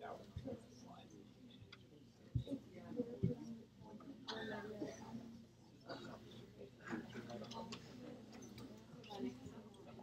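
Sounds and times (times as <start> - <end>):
students chattering: 2.4 - 10.0.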